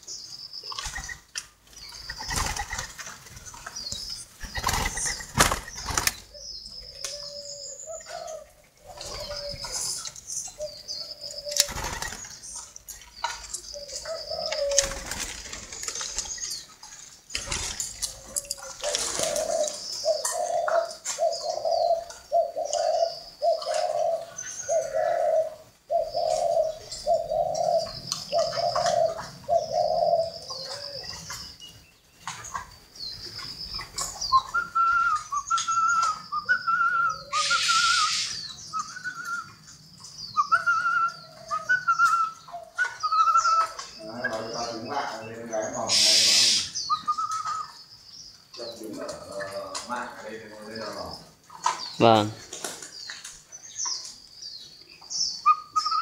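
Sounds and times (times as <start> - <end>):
small birds chirping: 0.0 - 56.0
doves cooing: 0.7 - 47.9, 48.5 - 54.1, 55.2 - 56.0
higher-pitched bird call: 34.3 - 39.5, 45.9 - 47.8.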